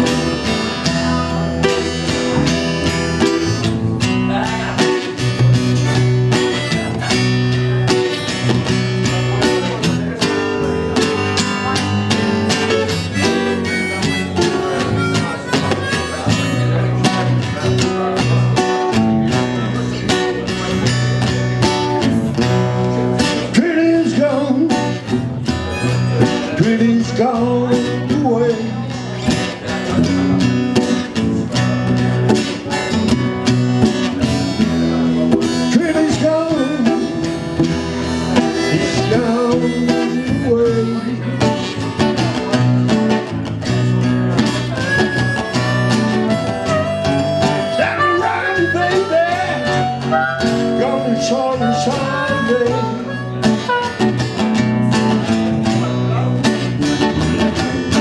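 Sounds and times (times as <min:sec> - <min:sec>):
acoustic guitars strumming: 0:00.0 - 0:58.0.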